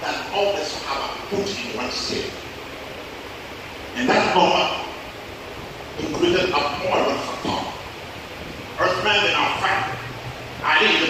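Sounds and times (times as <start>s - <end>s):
man speaking into a microphone: 0.0s - 2.4s, 3.9s - 5.0s, 6.0s - 7.9s, 8.8s - 11.0s.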